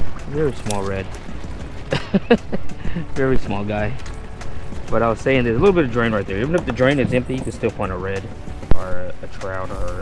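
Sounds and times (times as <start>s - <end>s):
man chuckling: 1.9s - 3.1s.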